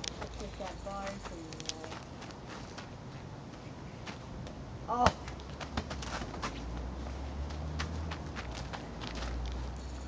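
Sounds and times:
footsteps crunching on mulch: 0.2s - 3.2s.

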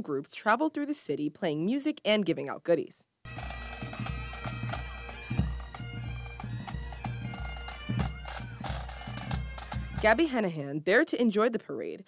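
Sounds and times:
bagpipes playing: 3.3s - 10.3s
bass and snare drums beating: 3.3s - 10.4s.

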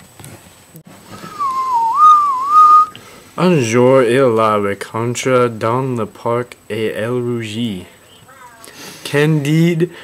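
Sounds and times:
person whistling: 1.2s - 3.0s.

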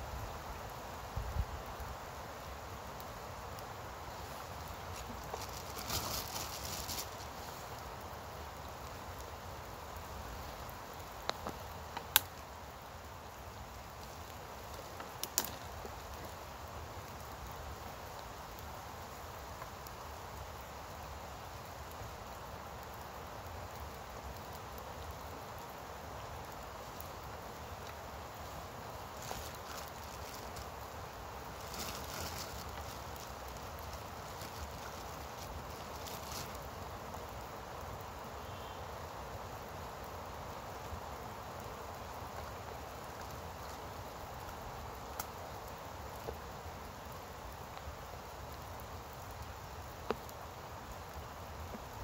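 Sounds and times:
soft background hiss: 0.0s - 52.0s
handling clicks and snaps: 11.2s - 12.4s, 15.0s - 15.6s.

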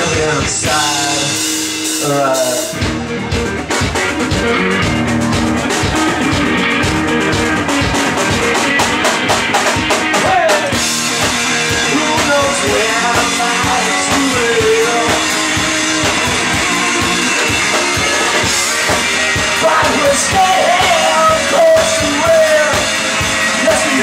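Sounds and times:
blues-rock band playing: 0.0s - 24.0s
sliding guitar lead line: 0.0s - 24.0s.

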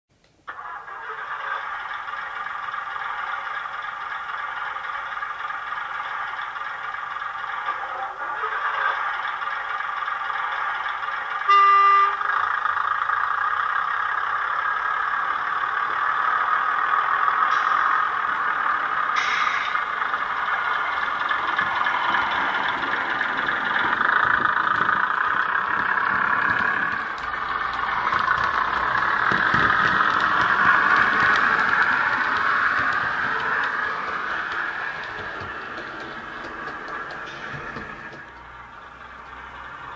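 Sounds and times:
diesel engines running: 0.3s - 39.9s.

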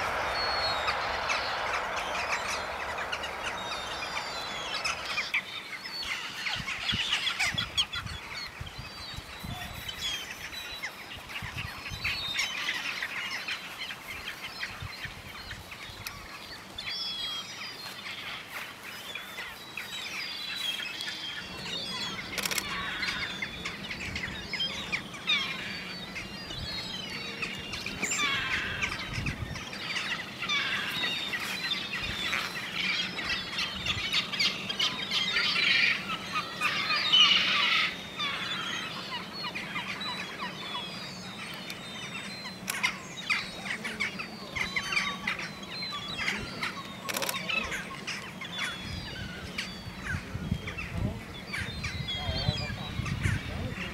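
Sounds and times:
low steady hum: 0.0s - 5.6s
gulls calling: 0.0s - 8.0s, 20.5s - 53.9s.

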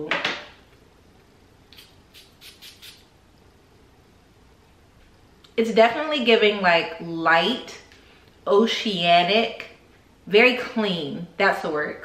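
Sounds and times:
perfume atomizer spraying: 1.7s - 3.1s.

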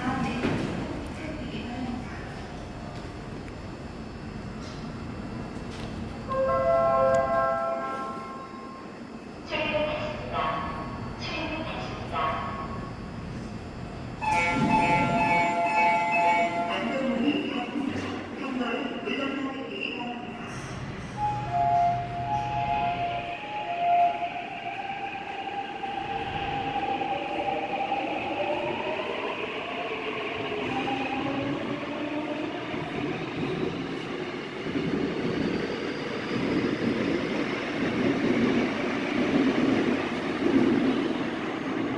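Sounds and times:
train motor whine: 13.3s - 16.9s
train wheel rumble: 20.3s - 41.9s.

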